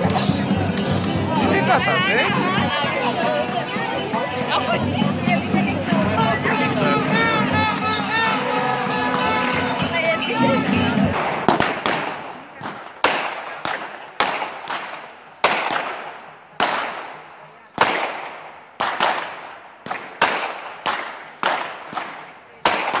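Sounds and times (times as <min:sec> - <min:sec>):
whip cracking with echo: 0:11.2 - 0:17.2, 0:17.8 - 0:23.0.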